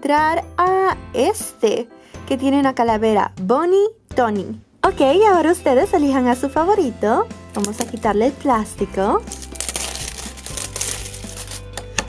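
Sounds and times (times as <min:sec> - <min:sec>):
quiet background music: 0:00.0 - 0:12.0
cellophane crinkling: 0:07.5 - 0:08.4, 0:09.2 - 0:11.8.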